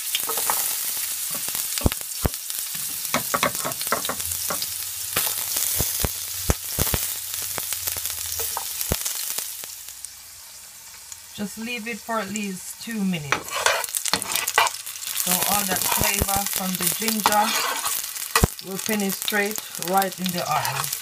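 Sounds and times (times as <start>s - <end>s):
food sizzling in hot oil: 0.0s - 21.0s.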